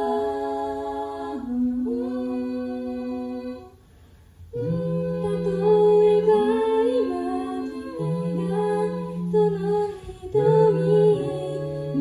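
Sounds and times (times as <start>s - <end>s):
a cappella group singing harmony: 0.0s - 12.0s.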